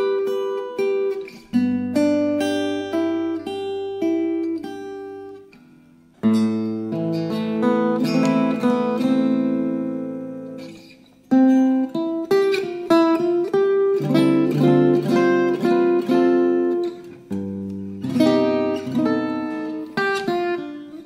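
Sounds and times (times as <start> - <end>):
acoustic jazz guitar playing: 0.0 - 21.0.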